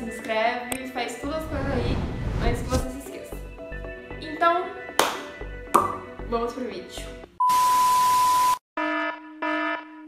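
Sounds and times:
alarm buzzer: 7.4 - 10.0.

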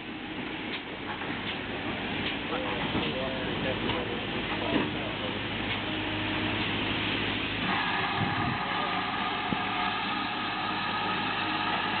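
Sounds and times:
steam locomotive moving off: 0.3 - 12.0
onlookers chattering: 2.4 - 6.5, 7.6 - 12.0.

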